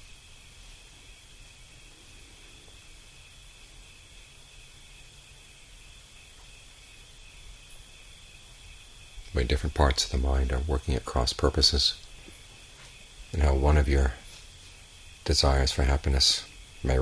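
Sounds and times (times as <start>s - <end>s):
crickets chirring: 0.0s - 17.0s
low background hiss: 0.0s - 17.0s.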